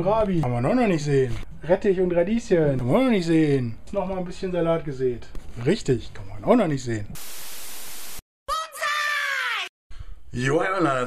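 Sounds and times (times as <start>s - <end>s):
tv static burst: 7.2s - 8.2s.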